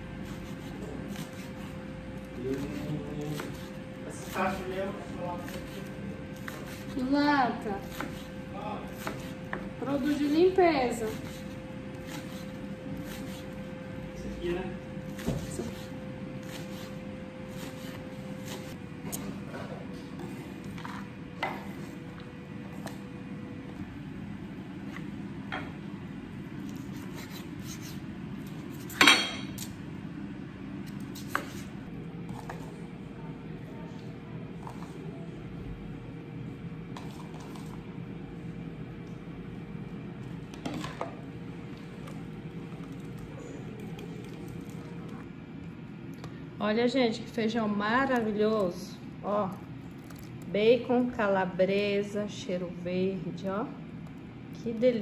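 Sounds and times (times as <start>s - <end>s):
low background hum: 0.0s - 55.0s
dishes and cutlery clinking: 28.9s - 29.7s.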